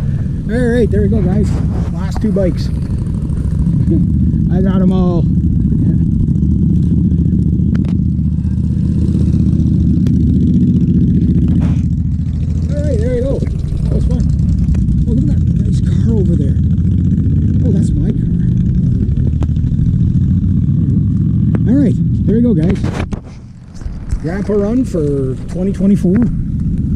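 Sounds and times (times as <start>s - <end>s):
motorcycle engines rumbling: 0.0s - 26.9s.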